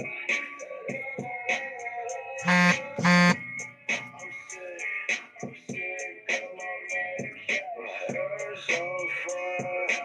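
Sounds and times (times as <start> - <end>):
music with ticking beat: 2.4 - 6.4
short loud buzzes: 2.5 - 3.4.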